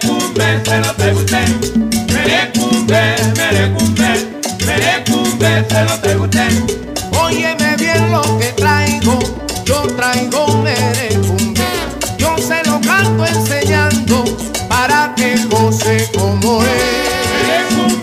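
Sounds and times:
salsa band music: 0.0 - 18.0.

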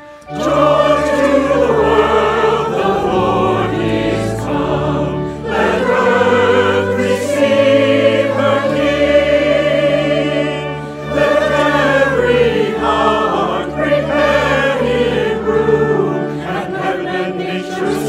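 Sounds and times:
mixed choir singing: 0.1 - 18.0.

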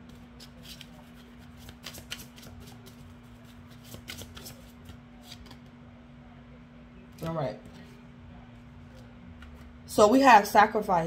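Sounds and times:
cards being shuffled: 0.0 - 5.7
faint steady hum: 0.0 - 11.0.

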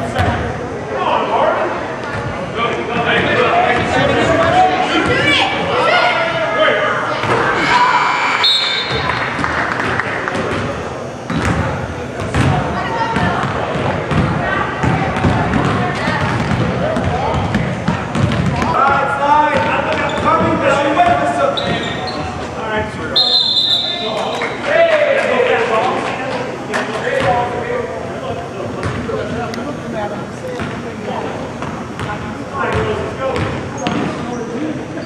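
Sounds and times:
voices echoing in hall: 0.0 - 35.0
basketball bouncing on hardwood floor: 13.2 - 18.7.

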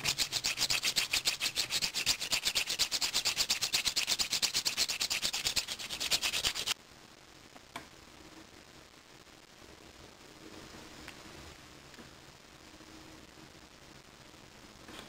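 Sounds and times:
sanding stick scraping resin: 0.0 - 6.8.

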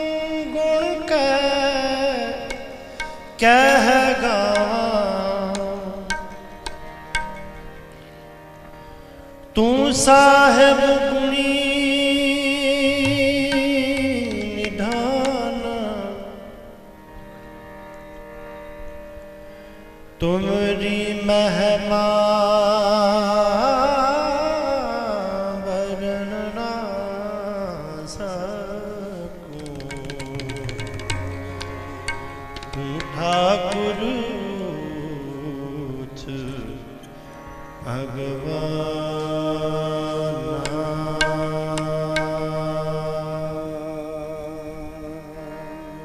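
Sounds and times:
harmonium chord: 0.0 - 46.0.

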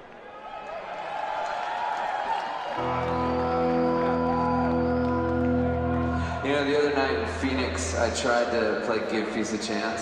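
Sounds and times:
crowd cheering and whooping: 0.1 - 7.2
sustained chord from stage: 2.8 - 7.8.

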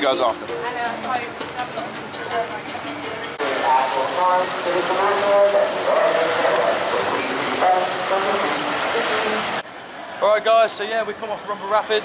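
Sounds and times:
whitewater rushing: 3.4 - 9.6.

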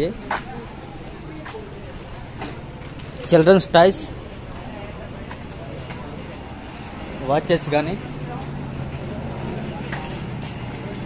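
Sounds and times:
indistinct voices: 0.0 - 11.0
traffic engine hum: 0.0 - 11.0.

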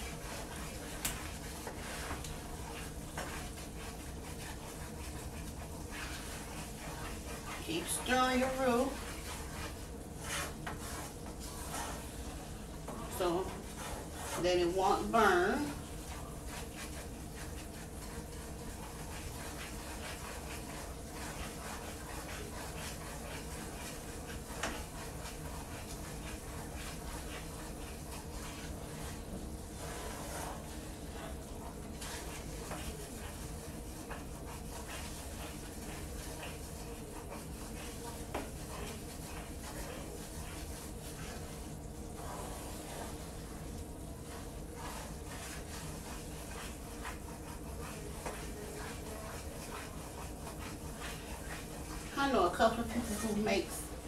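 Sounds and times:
roux sizzling in a skillet: 0.0 - 54.0
wooden spoon scraping a pan: 0.0 - 54.0.

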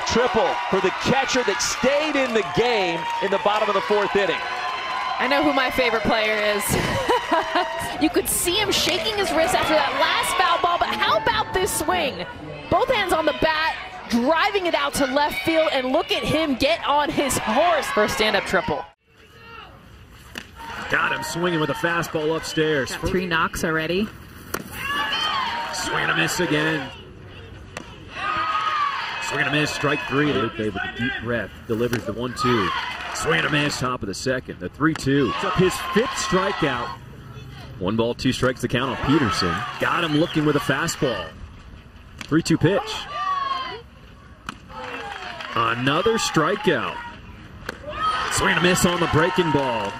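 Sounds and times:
faint ballpark crowd voices: 0.0 - 49.9.

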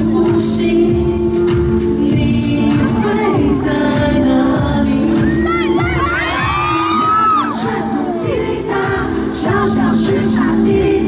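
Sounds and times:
live pop song with bass beat: 0.0 - 11.0
fans screaming and cheering: 5.0 - 9.2.

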